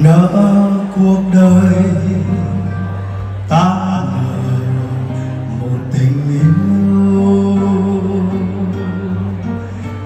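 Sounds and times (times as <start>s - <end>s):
live instrumental accompaniment: 0.0s - 10.0s
man singing a slow ballad: 0.0s - 10.0s.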